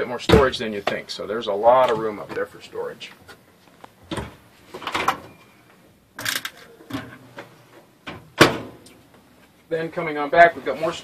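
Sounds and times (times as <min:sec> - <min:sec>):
cabinet door banging shut: 0:08.4 - 0:08.8.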